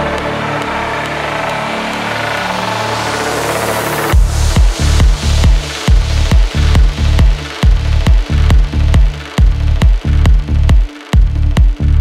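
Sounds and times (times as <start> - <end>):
sustained bass and synth tones: 0.0 - 12.0
rising white-noise sweep: 0.5 - 10.7.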